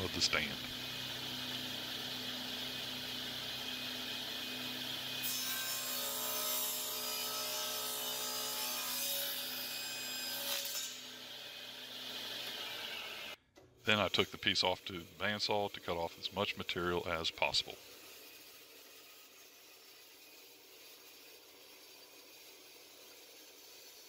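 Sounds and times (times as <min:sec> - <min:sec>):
table saw cutting wood: 0:00.0 - 0:24.0.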